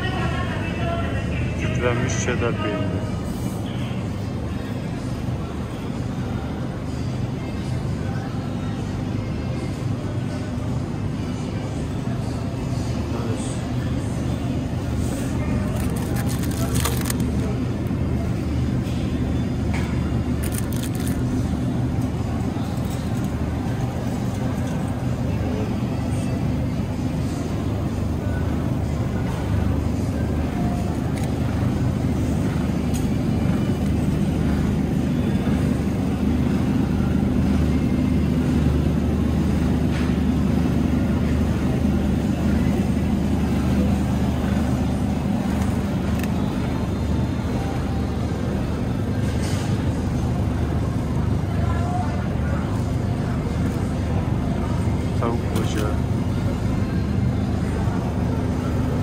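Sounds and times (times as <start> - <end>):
refrigerated display cases humming: 0.0 - 59.0
store ambience: 0.0 - 59.0
packages clicking: 15.6 - 17.4.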